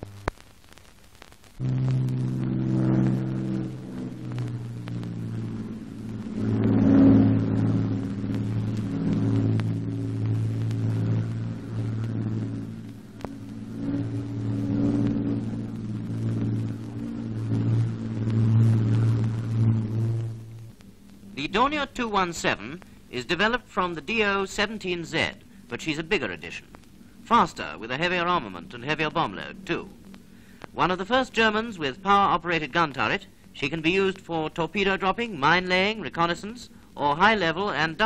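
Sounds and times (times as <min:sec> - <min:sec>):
aircraft engines droning: 0:01.6 - 0:38.0.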